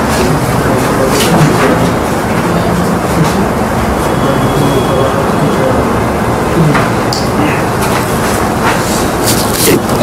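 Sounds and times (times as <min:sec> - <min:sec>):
faint background voices: 0:00.0 - 0:10.0
rumbling room noise: 0:00.0 - 0:10.0.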